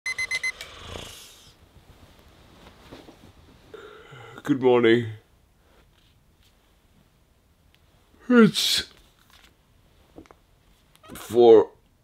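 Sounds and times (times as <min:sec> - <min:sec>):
digital alarm clock beeping: 0:00.1 - 0:00.6
soft hissing noise: 0:00.7 - 0:11.0.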